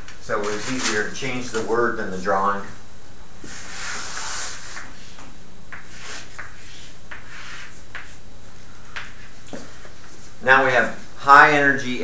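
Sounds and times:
steady low hum: 0:00.0 - 0:12.0
chalk rustle on blackboard: 0:00.4 - 0:01.1, 0:03.4 - 0:08.2
chalk scratching on blackboard: 0:03.4 - 0:08.2.

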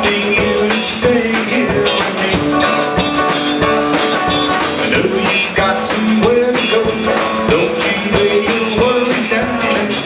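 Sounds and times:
drum kit steady beat: 0:00.0 - 0:10.0
electric and acoustic guitars: 0:00.0 - 0:10.0.

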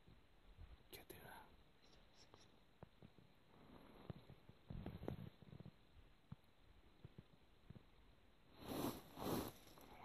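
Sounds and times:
person whispering close to microphone: 0:00.9 - 0:02.5.

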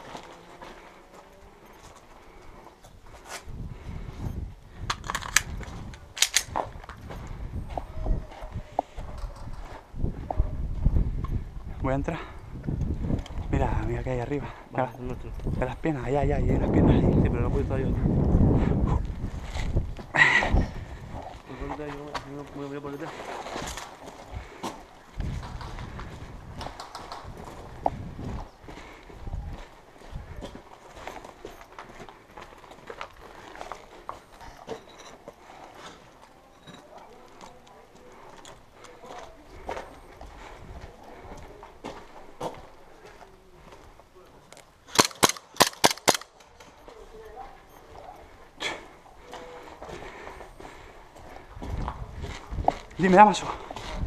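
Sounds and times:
footsteps on concrete: 0:21.2 - 0:44.1, 0:46.7 - 0:54.0
airsoft gun shots: 0:44.9 - 0:46.3.

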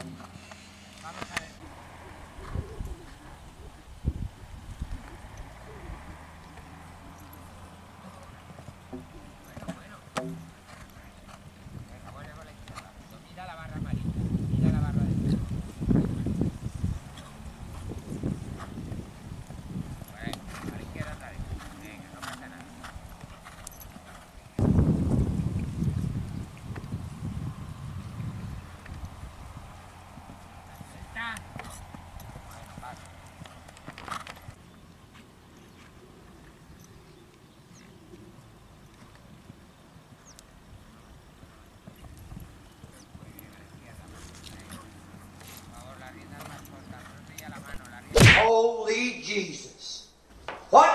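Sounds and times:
horse hoofbeats on sand: 0:04.9 - 0:36.6, 0:38.8 - 0:48.1.

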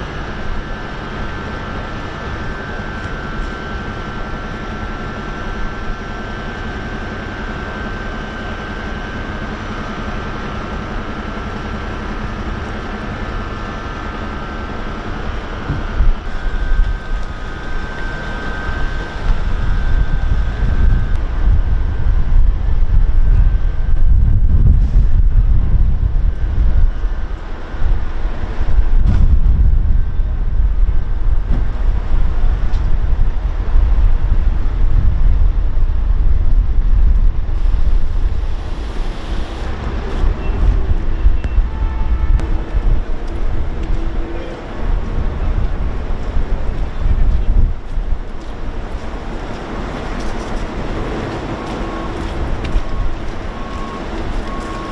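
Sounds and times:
wind buffeting microphone: 0:00.0 - 0:54.9.

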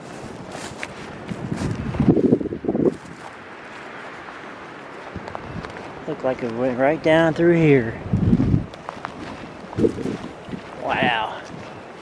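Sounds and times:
footsteps through dry grass: 0:00.0 - 0:12.0.

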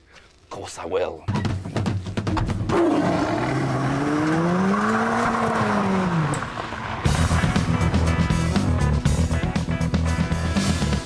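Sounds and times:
car engine accelerating: 0:02.4 - 0:08.8.

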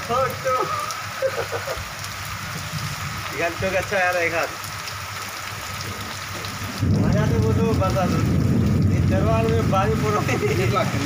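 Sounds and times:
heavy rain on metal: 0:00.0 - 0:11.0.

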